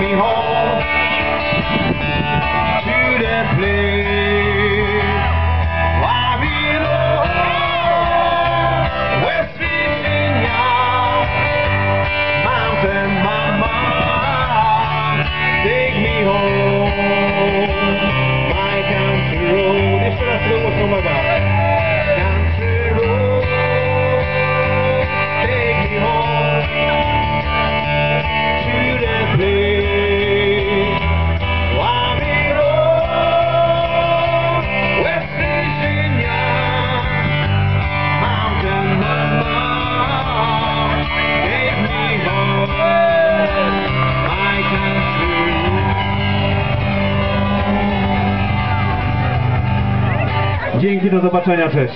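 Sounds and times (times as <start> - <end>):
acoustic guitar: 0.0 - 51.9
lead melody with bending notes: 0.0 - 51.9
steady bass line: 0.0 - 51.9.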